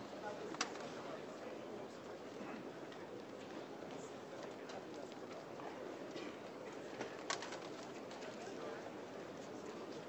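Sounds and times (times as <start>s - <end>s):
low indistinct murmur: 0.0s - 10.0s.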